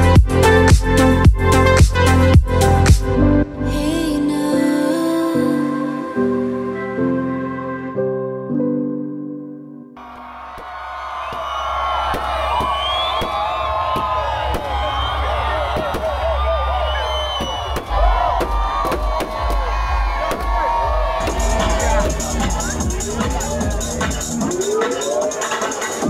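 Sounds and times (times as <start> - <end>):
deep bass music: 0.0 - 4.2, 11.2 - 26.0
crowd cheering and whooping: 10.0 - 26.0
fireworks bangs and cracks: 10.6 - 16.2, 17.4 - 19.6.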